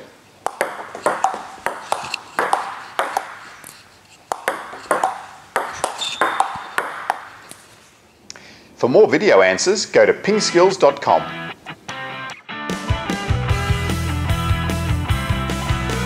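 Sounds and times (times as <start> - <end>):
table tennis ball clicking: 0.4 - 7.7.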